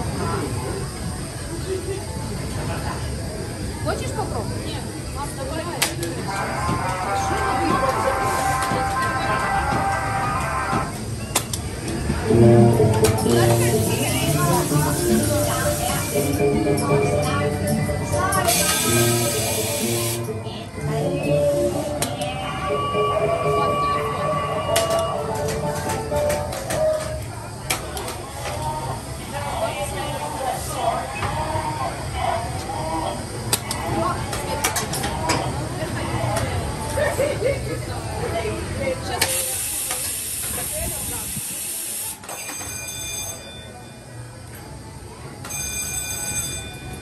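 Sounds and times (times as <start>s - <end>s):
high steady ringing tone: 42.3s - 44.3s, 45.4s - 47.0s.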